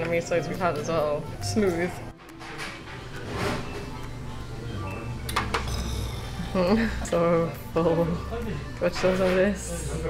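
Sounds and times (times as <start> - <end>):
background music sustained tones: 0.0 - 10.0.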